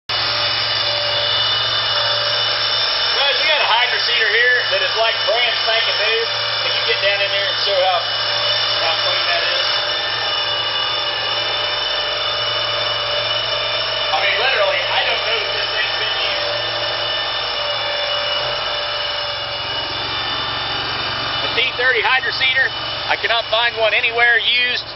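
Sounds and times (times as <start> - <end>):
machine whirring: 0.1 - 24.9.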